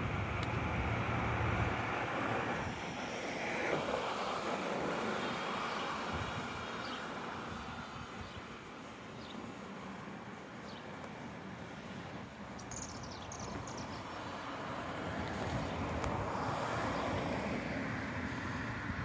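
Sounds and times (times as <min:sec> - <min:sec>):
wind buffeting microphone: 0:06.0 - 0:06.8, 0:15.1 - 0:19.0.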